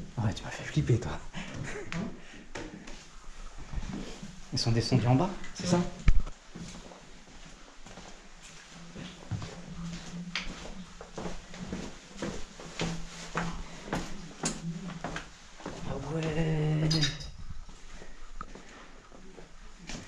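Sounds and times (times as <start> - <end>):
footsteps on carpeted stairs: 6.5 - 16.4.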